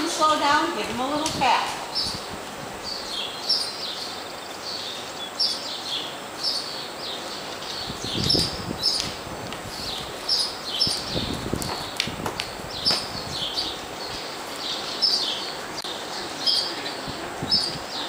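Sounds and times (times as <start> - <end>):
small birds chirping: 0.0 - 18.0.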